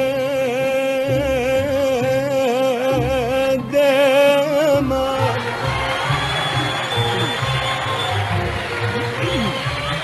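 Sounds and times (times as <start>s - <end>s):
orchestra playing: 1.3s - 10.0s
audience applauding and cheering: 4.3s - 10.0s.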